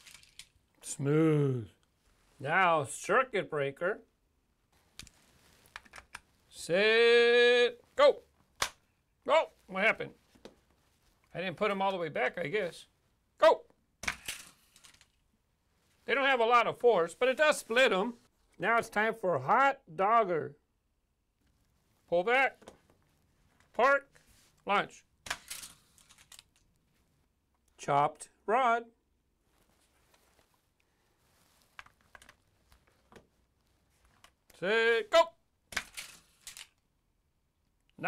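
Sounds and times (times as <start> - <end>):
toy launcher plastic clack: 35.7 - 36.7.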